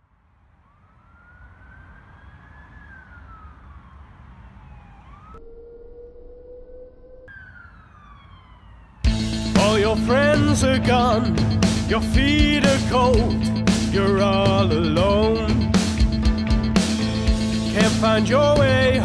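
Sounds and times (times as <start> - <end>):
siren-like synth wail: 0.4 - 11.0
low rumble: 5.2 - 8.1
steady held tone: 5.4 - 8.0
band playing synth-pop: 9.0 - 19.0
person singing: 9.4 - 15.8, 17.5 - 19.0.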